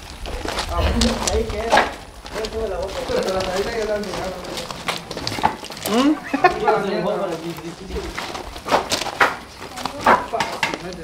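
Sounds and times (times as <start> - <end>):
firewood logs knocking together: 0.0 - 11.0.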